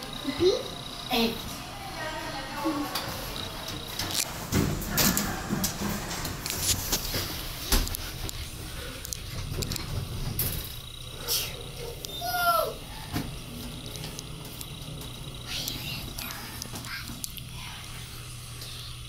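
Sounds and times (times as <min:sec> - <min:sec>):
elevator doors sliding open: 0:02.7 - 0:16.5
scattered clicks and knocks: 0:02.9 - 0:11.0.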